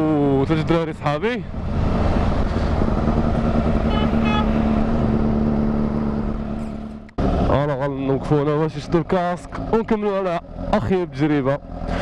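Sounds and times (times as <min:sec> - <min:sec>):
wind and road noise: 0:00.0 - 0:12.0
motorcycle engine at low revs: 0:01.5 - 0:07.5
horn short beeps: 0:03.9 - 0:04.6.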